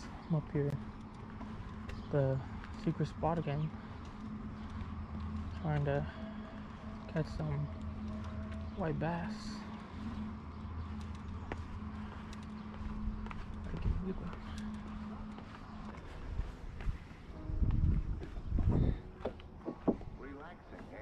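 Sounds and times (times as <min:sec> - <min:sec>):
low rumbles: 0:00.0 - 0:21.0
steady low hum: 0:00.0 - 0:21.0
footsteps on concrete and rock: 0:00.7 - 0:21.0.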